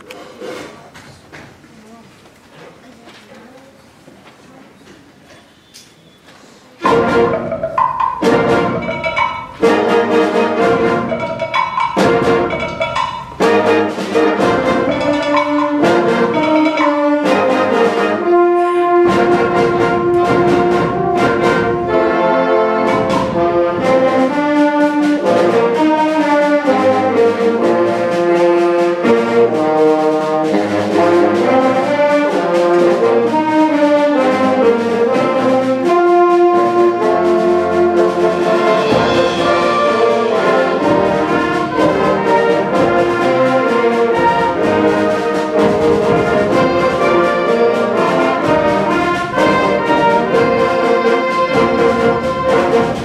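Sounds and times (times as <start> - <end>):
concert band playing: 6.8 - 53.0.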